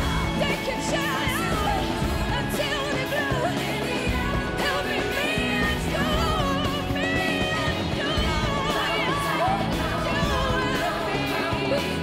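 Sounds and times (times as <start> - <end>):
live rock band: 0.0 - 12.0
woman singing: 0.0 - 12.0.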